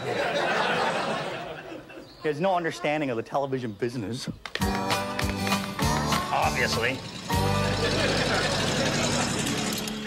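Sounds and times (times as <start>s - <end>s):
studio audience laughing: 0.0s - 2.1s, 7.6s - 9.7s.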